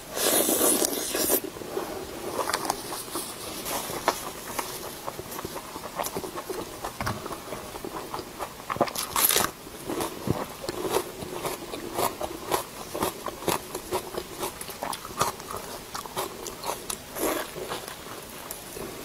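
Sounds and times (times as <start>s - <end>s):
crunchy bites and chewing: 3.8s - 18.6s.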